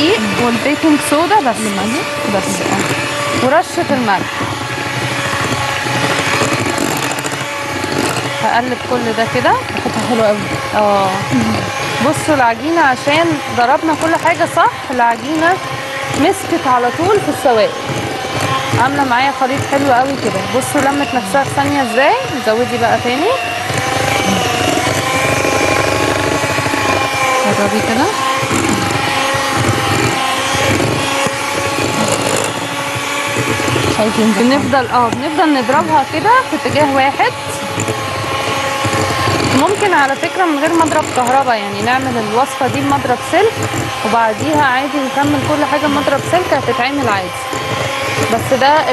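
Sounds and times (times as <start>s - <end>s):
electric hand mixer running: 0.0s - 48.9s.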